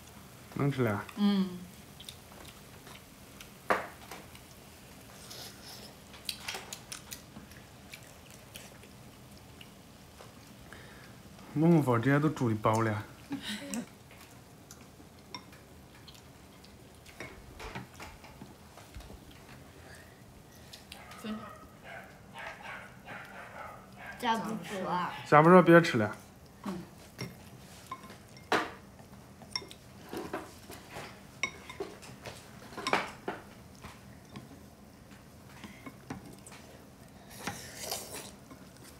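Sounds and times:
chopsticks clinking on ceramic bowls: 27.2 - 28.8, 29.5 - 33.4.

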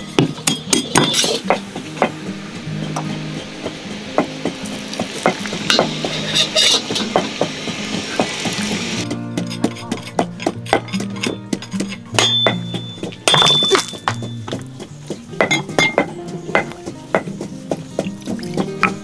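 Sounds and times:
sharp crackles and clinks: 0.0 - 1.7, 4.4 - 16.7
hot oil sizzling in a wok: 0.0 - 9.6
soft background music: 0.0 - 19.0.

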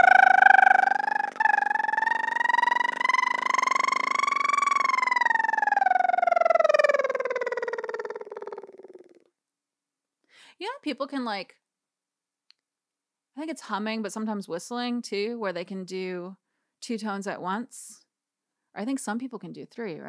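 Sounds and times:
woman humming and whistling: 0.0 - 9.2.

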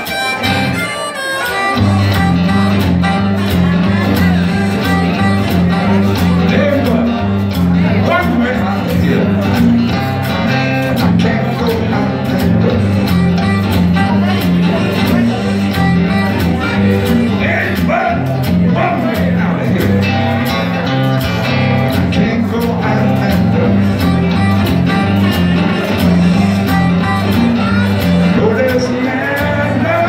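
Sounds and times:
acoustic guitar blues riff: 0.0 - 30.0.

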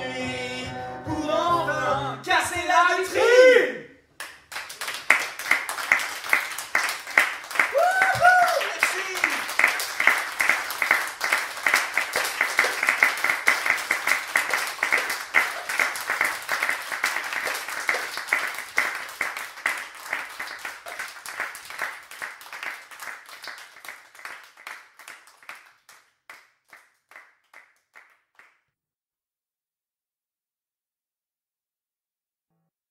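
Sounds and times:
audience applauding: 4.2 - 28.6.

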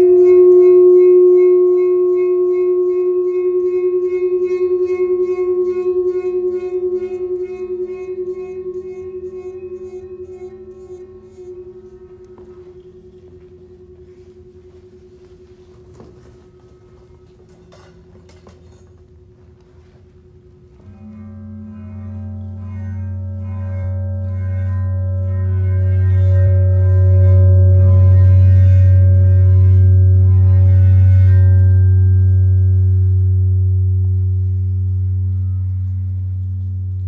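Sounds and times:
high ringing tone: 0.0 - 18.8, 20.7 - 37.0
vibrating metal plate hum: 0.0 - 37.0.

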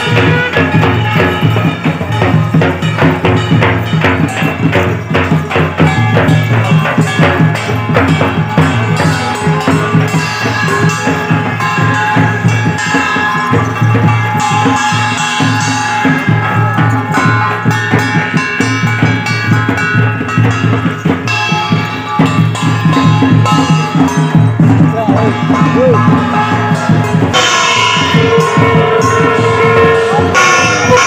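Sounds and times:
drums beating fast rhythm: 0.0 - 31.0
held melody: 0.0 - 31.0.

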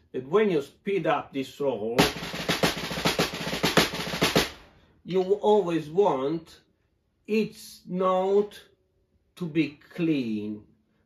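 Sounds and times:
snare drum roll: 2.0 - 4.7.

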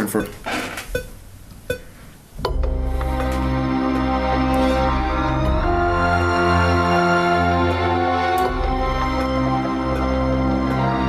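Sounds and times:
sampled french horn: 3.1 - 11.0.

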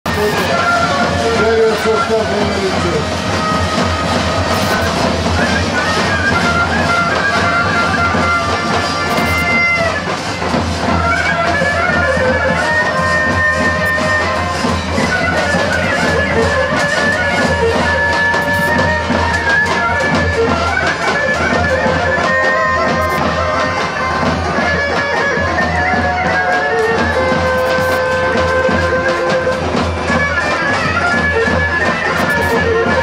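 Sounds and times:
bagpipe folk melody with drone: 0.0 - 33.0
large drum beating: 0.1 - 33.0.

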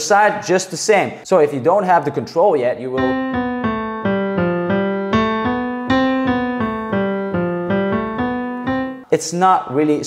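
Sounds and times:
digital piano single notes: 3.0 - 9.1.

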